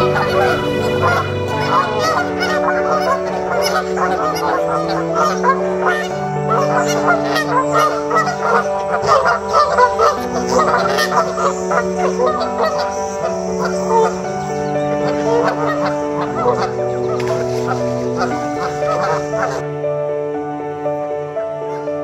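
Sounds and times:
geese honking: 0:00.0 - 0:19.7
music with low held notes: 0:00.0 - 0:22.0.

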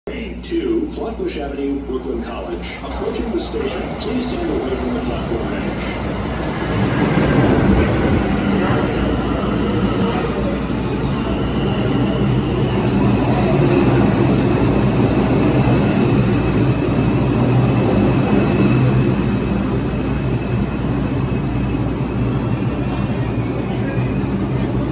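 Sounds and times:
subway train wheels rumbling: 0:00.1 - 0:24.9.

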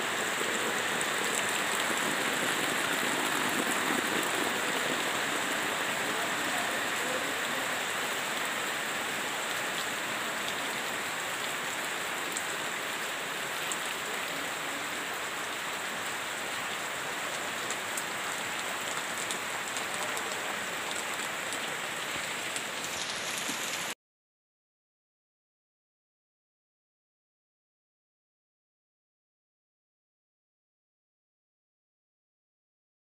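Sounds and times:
steady rain falling: 0:00.0 - 0:24.0.

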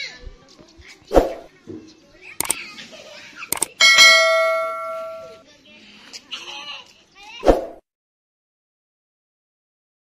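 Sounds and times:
double mouse click: 0:03.5 - 0:03.8
notification bell ding: 0:03.7 - 0:05.4.

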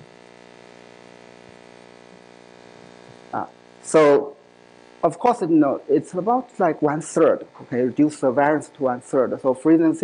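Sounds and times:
electrical mains hum: 0:00.0 - 0:10.0
person speaking: 0:03.3 - 0:04.4, 0:05.0 - 0:10.0.

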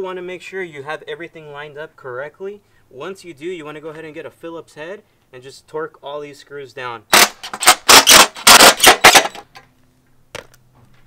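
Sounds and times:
impact driver hammering: 0:07.2 - 0:09.5.

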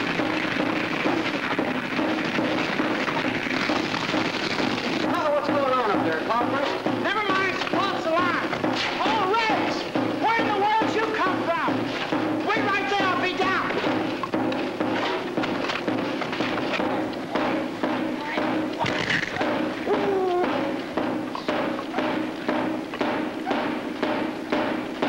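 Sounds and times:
irregular thumps and knocks: 0:00.0 - 0:25.0.

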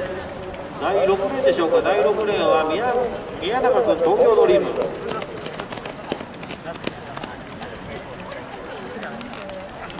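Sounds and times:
footsteps on synthetic track: 0:03.7 - 0:09.7.

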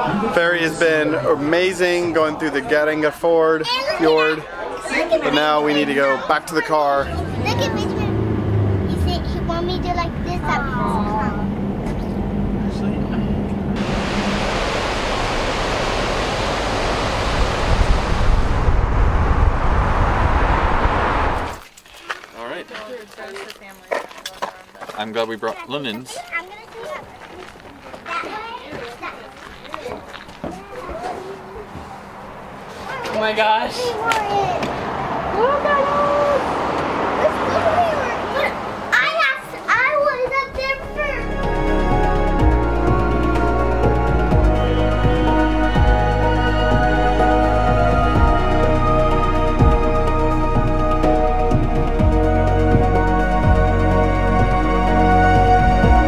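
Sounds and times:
wind and road noise: 0:00.0 - 0:56.0
children calling out excitedly: 0:03.6 - 0:11.5, 0:26.1 - 0:33.2, 0:33.8 - 0:41.6
steady rushing noise: 0:07.0 - 0:21.7
faint talk: 0:37.1 - 0:41.2.

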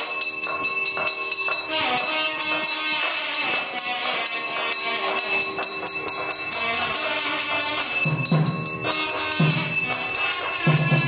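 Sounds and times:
temple bells ringing rapidly: 0:00.0 - 0:11.0.

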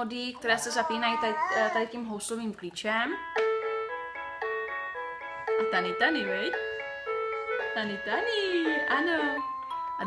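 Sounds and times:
toy keyboard electronic melody: 0:03.2 - 0:10.0.

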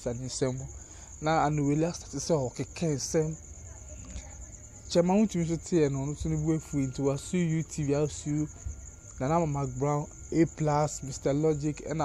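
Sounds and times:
man speaking: 0:00.0 - 0:03.4, 0:04.9 - 0:12.0
high-pitched whine: 0:04.9 - 0:12.0.

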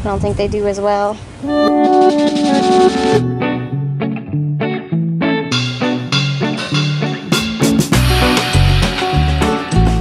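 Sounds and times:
held pitched notes: 0:01.4 - 0:10.0
short plucked notes: 0:01.4 - 0:10.0.

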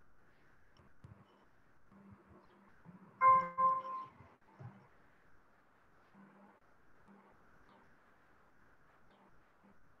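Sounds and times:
two-tone notification chime: 0:03.2 - 0:04.1.

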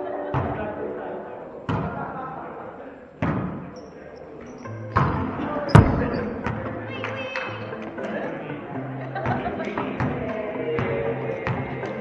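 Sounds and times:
volleyball hit echoing in gym: 0:01.6 - 0:02.2, 0:03.2 - 0:03.8, 0:04.9 - 0:07.2.

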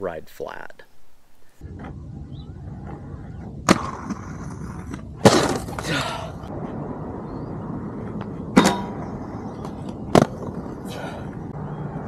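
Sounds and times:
skates grinding along a rail: 0:02.8 - 0:06.5
inline skates landing clack: 0:03.6 - 0:06.0, 0:08.2 - 0:10.8.

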